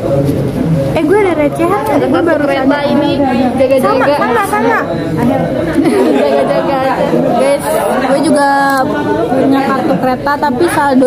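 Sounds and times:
young women chattering: 1.0s - 11.0s.

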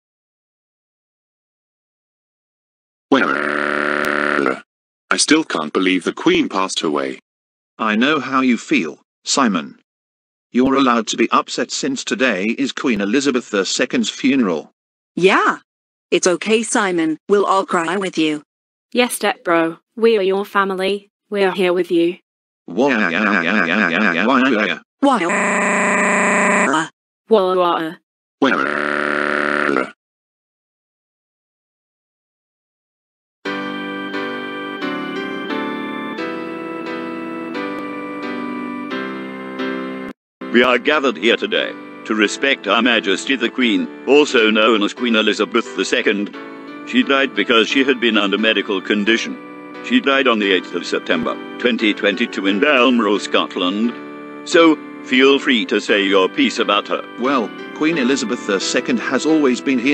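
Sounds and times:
synthesized voice wailing: 3.1s - 4.6s, 22.7s - 26.9s, 28.4s - 28.8s, 29.6s - 30.0s
synthesized voice sobbing: 22.8s - 24.3s.

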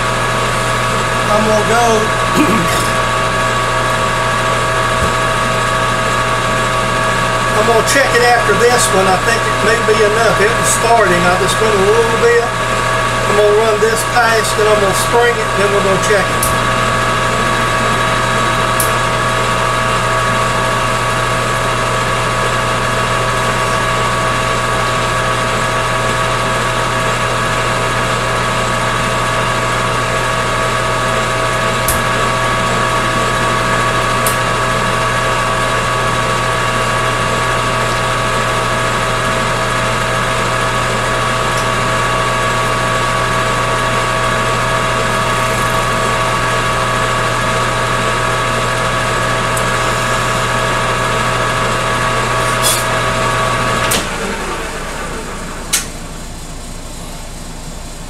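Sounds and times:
lathe motor hum with gear whine: 0.0s - 58.0s.

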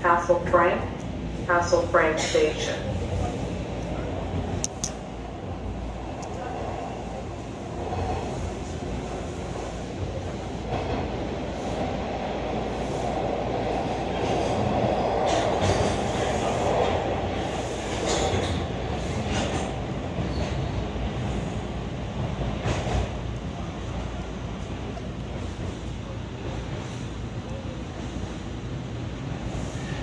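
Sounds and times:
subway train wheel and rail rumble: 0.0s - 30.0s.

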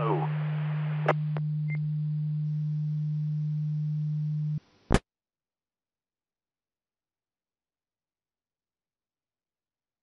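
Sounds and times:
steady low radio tone: 0.0s - 4.6s.

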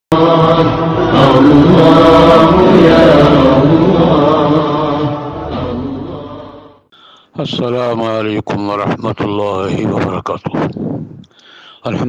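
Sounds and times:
chanted vocal jingle: 0.1s - 6.8s.

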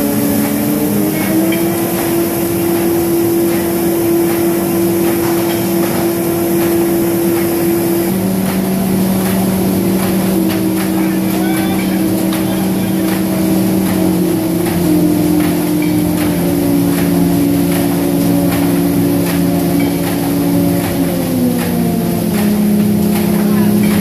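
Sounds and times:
machine hum of motors: 0.0s - 24.0s.

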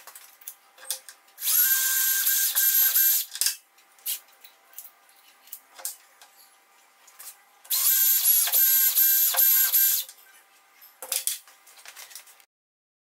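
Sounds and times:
cordless drill whining: 1.4s - 3.3s, 7.7s - 10.0s.

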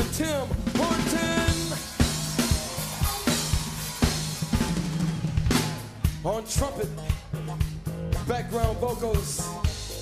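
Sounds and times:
bass line: 0.0s - 10.0s
funk band groove: 0.0s - 10.0s.

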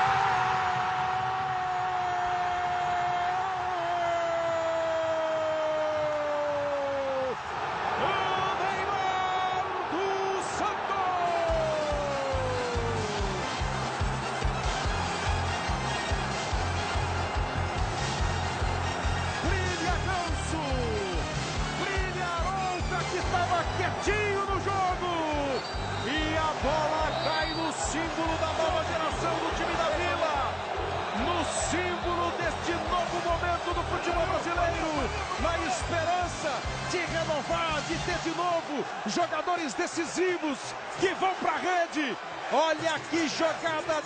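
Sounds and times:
stadium crowd cheering: 0.0s - 44.0s
commentator shouting: 5.6s - 13.5s, 19.4s - 44.0s.

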